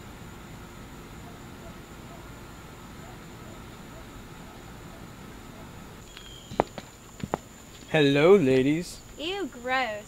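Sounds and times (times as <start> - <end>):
sharp footsteps: 6.0 - 8.0.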